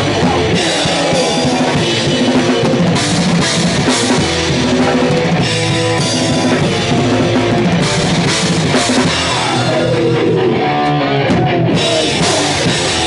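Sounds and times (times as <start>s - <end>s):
fast drum beat: 0.0s - 10.6s, 11.3s - 13.0s
distorted electric guitar chords: 0.0s - 13.0s.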